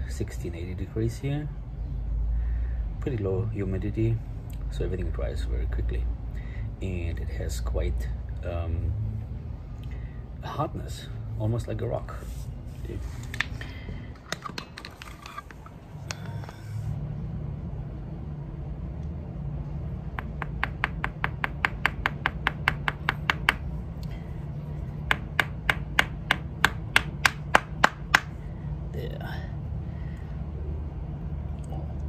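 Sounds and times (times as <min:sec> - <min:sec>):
clay ball tapping on tile: 0:20.1 - 0:23.7, 0:25.0 - 0:28.3.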